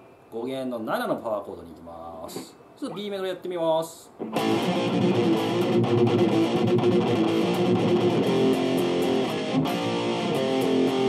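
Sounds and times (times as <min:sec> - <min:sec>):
electric guitar power chords: 0:04.2 - 0:11.0.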